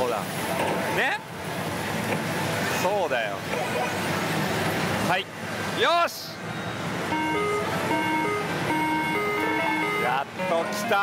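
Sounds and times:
slot machine beeping melody: 0:07.1 - 0:11.0.

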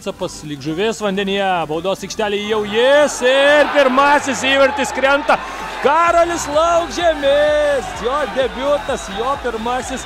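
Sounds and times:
man commentating: 0:01.5 - 0:10.0.

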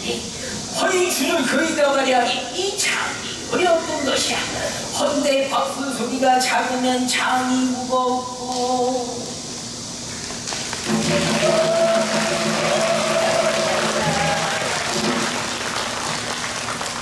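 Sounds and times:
audience applauding: 0:10.5 - 0:17.0.

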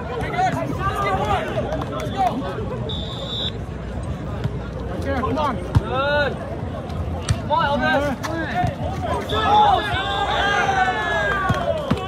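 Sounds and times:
players shouting: 0:00.0 - 0:03.6, 0:07.5 - 0:12.0
crowd chatter: 0:00.0 - 0:12.0.

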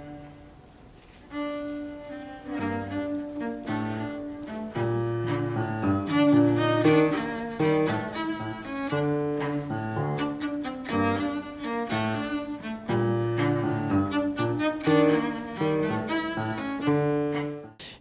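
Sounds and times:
bowed cello notes: 0:00.0 - 0:00.6, 0:01.3 - 0:17.8
piano chords: 0:00.0 - 0:00.7, 0:01.3 - 0:17.9.

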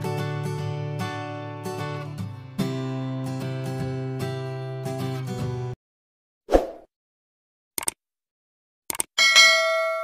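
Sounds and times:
double mouse click: 0:08.9 - 0:09.1
notification bell ding: 0:09.2 - 0:10.0.

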